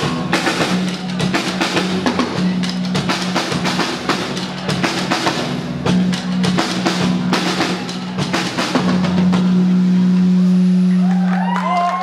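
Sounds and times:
drum hits: 0:00.0 - 0:10.8.

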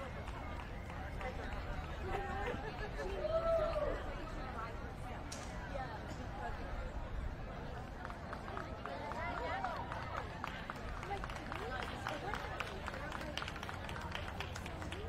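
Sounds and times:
murmur of spectators talking: 0:00.0 - 0:15.0.

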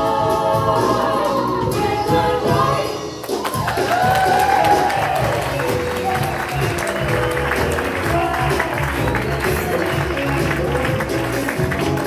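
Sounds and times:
live band playing: 0:00.0 - 0:12.0
audience applause: 0:03.2 - 0:12.0.

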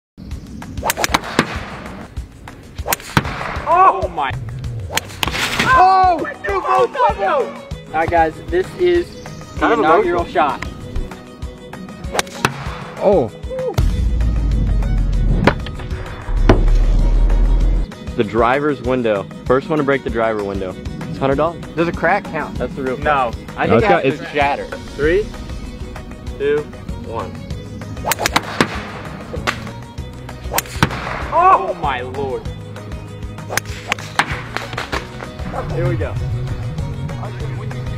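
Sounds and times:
background music: 0:00.2 - 0:37.9
golf clubs striking balls: 0:00.8 - 0:02.1, 0:12.1 - 0:12.9, 0:28.0 - 0:29.8, 0:30.4 - 0:31.4, 0:33.5 - 0:35.3
golf balls hitting a car: 0:28.1 - 0:29.8, 0:30.6 - 0:31.3, 0:33.6 - 0:35.0.

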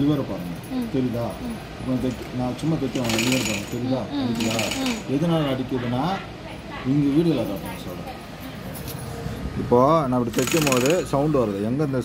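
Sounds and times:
sewing machine running: 0:02.9 - 0:03.8, 0:04.4 - 0:05.1, 0:10.3 - 0:11.1.

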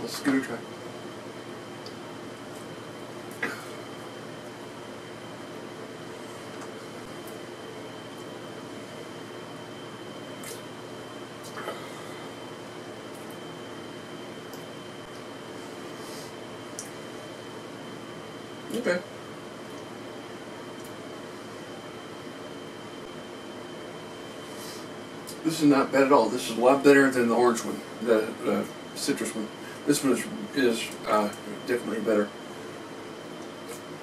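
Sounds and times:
faint high whine: 0:00.0 - 0:34.0
room hum: 0:00.0 - 0:34.0.

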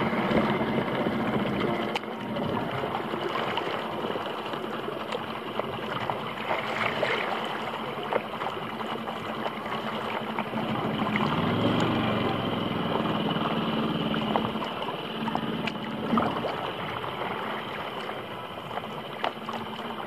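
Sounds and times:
boat motor hum: 0:00.0 - 0:20.0
water lapping against paddle board: 0:00.0 - 0:20.0.

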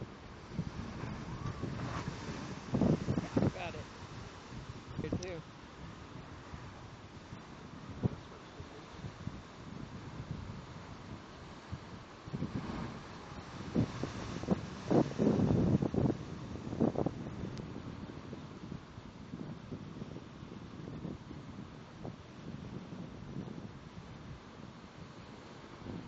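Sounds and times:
ocean surf churning: 0:00.0 - 0:26.0
wind buffeting microphone: 0:00.0 - 0:26.0.

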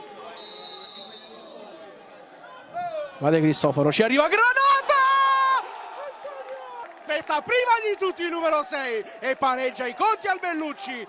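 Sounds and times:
low crowd murmur: 0:00.0 - 0:03.2.

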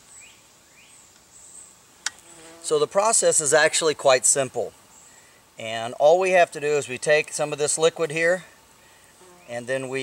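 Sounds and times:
high thin insect buzz: 0:01.1 - 0:03.7, 0:08.8 - 0:09.6.

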